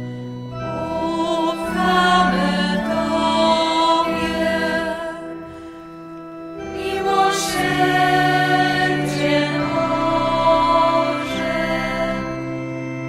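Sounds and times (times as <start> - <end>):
choir singing a slow hymn: 0.6 - 5.8, 6.5 - 12.8.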